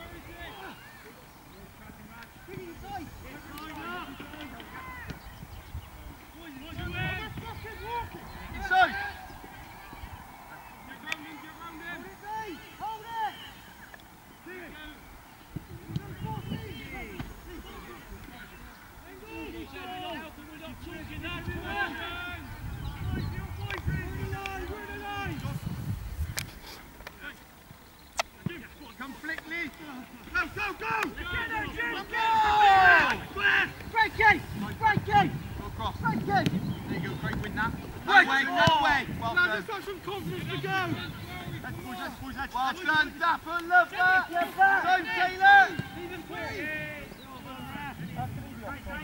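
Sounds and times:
distant players shouting: 0.0 - 5.3, 6.2 - 25.6, 28.4 - 49.0
long loud shout: 30.6 - 34.2.

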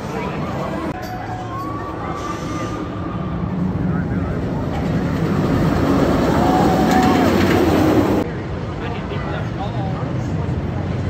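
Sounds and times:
roller coaster rumble on track: 0.0 - 11.0.

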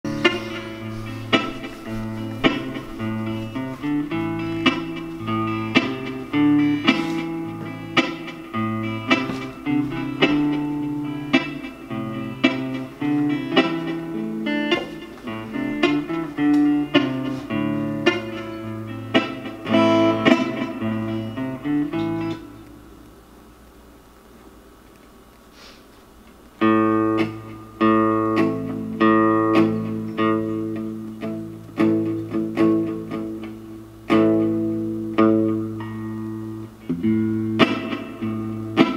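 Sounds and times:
plucked acoustic guitar pattern: 0.0 - 22.9, 26.6 - 38.9.

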